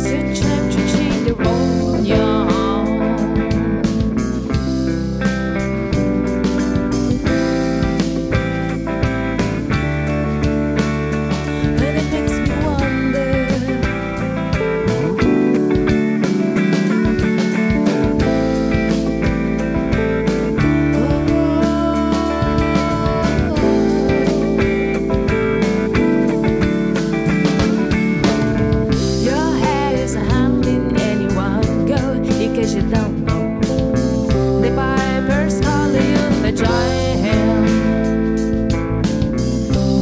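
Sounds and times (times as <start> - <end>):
drums keeping steady beat: 0.0 - 40.0
rock band playing: 0.0 - 40.0.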